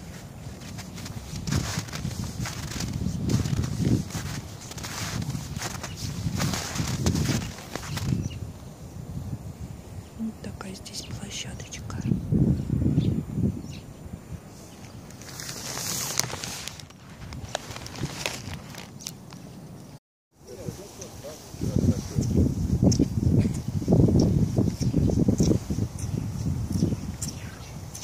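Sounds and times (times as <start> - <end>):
footsteps crunching in snow: 0.0 - 8.4, 14.8 - 19.7.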